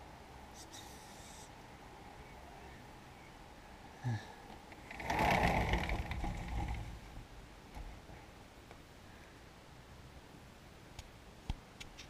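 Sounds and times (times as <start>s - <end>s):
fur rustling against curtain: 4.9s - 7.2s.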